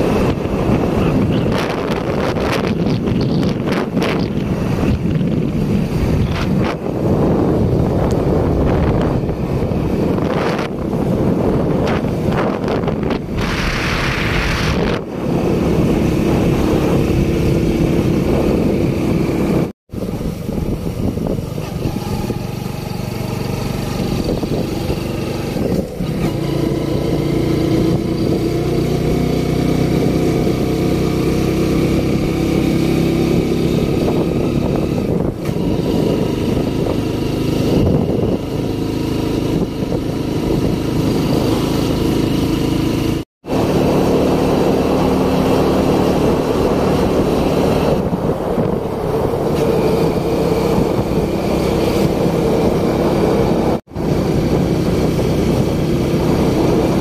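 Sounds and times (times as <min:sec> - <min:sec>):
motorcycle engine running: 0:00.0 - 0:57.0
road and air noise: 0:00.0 - 0:57.0.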